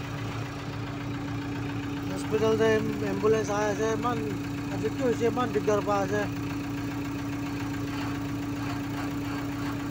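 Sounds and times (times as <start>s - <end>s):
vehicle engine idling: 0.0s - 9.9s.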